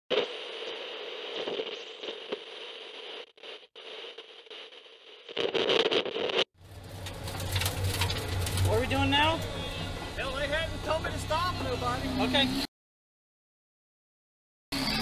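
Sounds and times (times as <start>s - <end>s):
crackling static noise: 0.1s - 6.5s.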